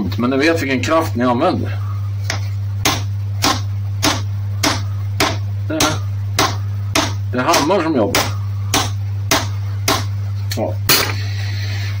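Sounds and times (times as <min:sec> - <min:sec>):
steady low hum: 0:00.0 - 0:12.0
hammer tapping on metal: 0:02.3 - 0:10.1.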